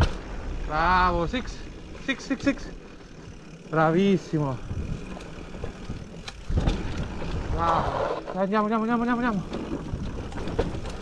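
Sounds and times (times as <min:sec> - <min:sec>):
bike frame and drivetrain rattle: 0:00.0 - 0:11.0
bike tyre rumble on dirt: 0:00.0 - 0:11.0
sharp ticks: 0:03.7 - 0:06.7
wind buffeting microphone: 0:04.3 - 0:08.3, 0:09.1 - 0:11.0.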